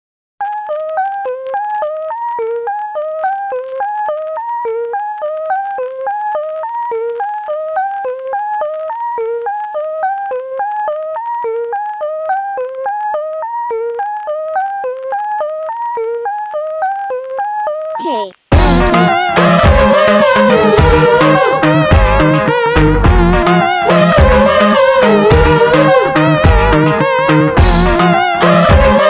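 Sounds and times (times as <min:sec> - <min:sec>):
synthesizer riff: 0:18.5 - 0:29.0.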